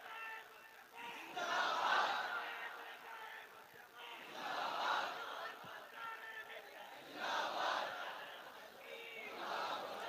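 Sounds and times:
men chanting together: 1.0s - 10.0s.

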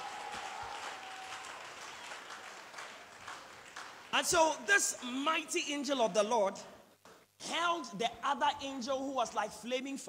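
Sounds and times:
congregation applauding: 0.0s - 5.2s.

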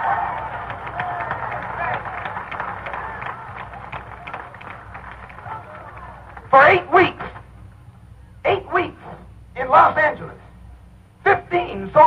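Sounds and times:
crowd cheering and clapping: 0.0s - 6.6s.

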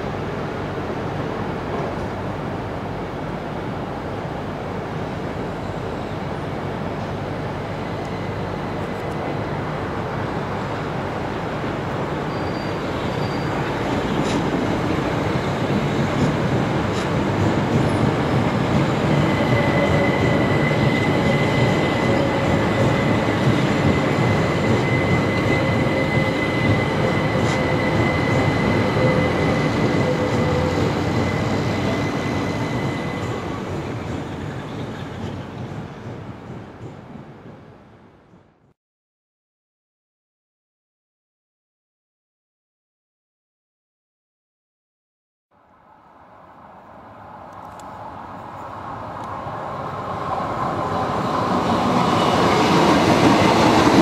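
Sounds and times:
electric train rolling past: 0.0s - 38.5s, 46.0s - 54.0s
high-pitched wheel squeal: 12.3s - 13.8s, 19.1s - 33.6s.

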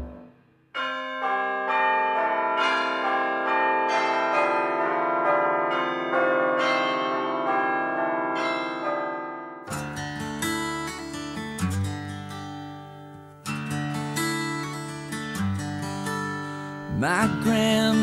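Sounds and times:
acoustic guitar strumming: 0.0s - 0.3s, 9.7s - 18.0s
ringing bell-like chimes: 0.0s - 11.7s.

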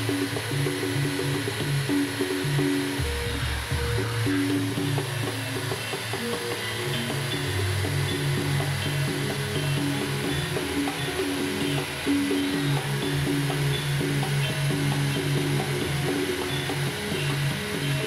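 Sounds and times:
background music held notes: 0.0s - 18.0s
electric drill whirring: 0.0s - 18.0s.

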